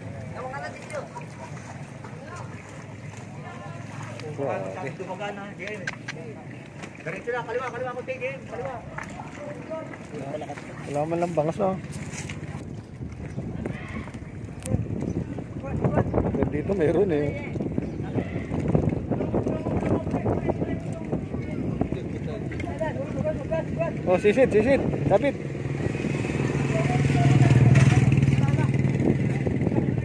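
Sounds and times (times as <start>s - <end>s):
people talking outdoors: 0.0s - 30.0s
wind rumble on microphone: 12.0s - 30.0s
small engine passing by: 25.4s - 30.0s.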